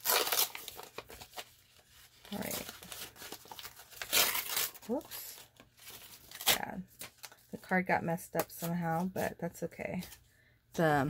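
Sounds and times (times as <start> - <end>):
envelope paper ripping: 0.0 - 7.5
paper rustling and crinkling: 0.0 - 7.8.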